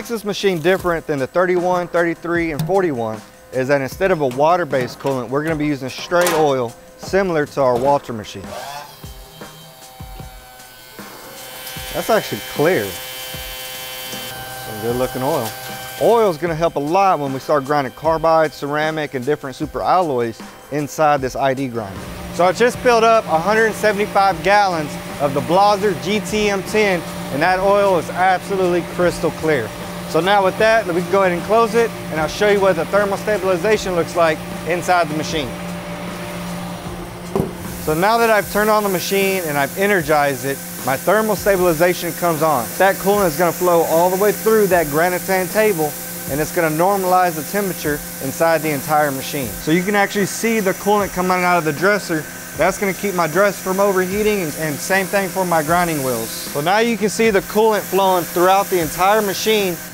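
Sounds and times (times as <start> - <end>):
low hum of shop machinery: 0.0 - 59.9
pump motor buzzing: 0.0 - 59.9
cabinet lid thump: 37.3 - 37.7
hiss: 37.6 - 59.9.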